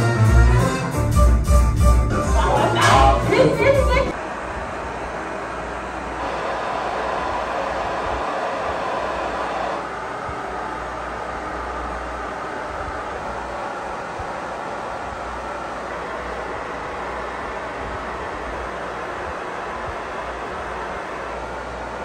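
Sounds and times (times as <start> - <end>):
pink noise test tone: 2.4 - 22.0.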